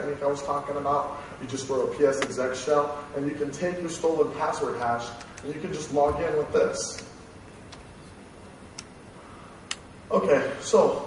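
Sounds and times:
room tone of a large hall: 0.0 - 11.0.

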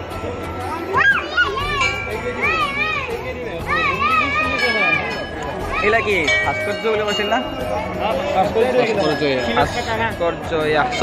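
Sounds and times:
crowd of worshippers: 0.0 - 11.0
sing-song voices calling out: 0.0 - 11.0
temple bell ringing: 1.6 - 11.0.

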